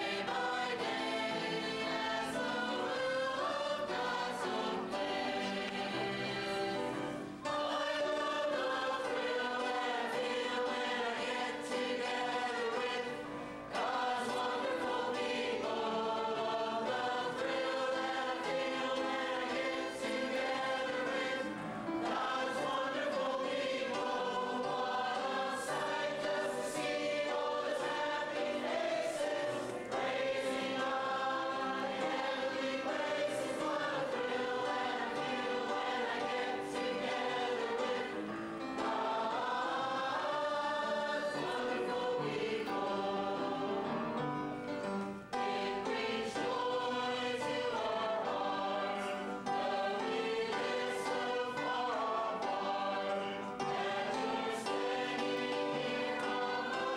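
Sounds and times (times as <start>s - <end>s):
mixed choir singing: 0.0s - 56.9s.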